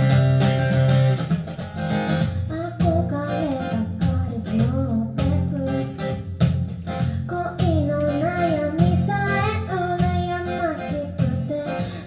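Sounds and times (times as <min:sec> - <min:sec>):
acoustic guitar strumming: 0:00.0 - 0:12.0
woman singing: 0:02.5 - 0:06.3, 0:07.1 - 0:12.0.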